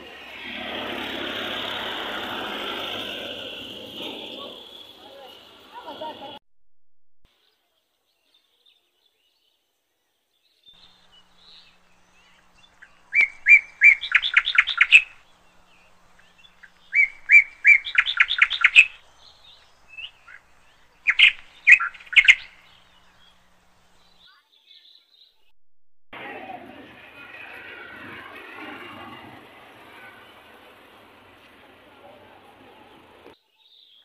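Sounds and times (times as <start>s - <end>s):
bird singing: 0.0s - 6.4s, 10.4s - 25.4s.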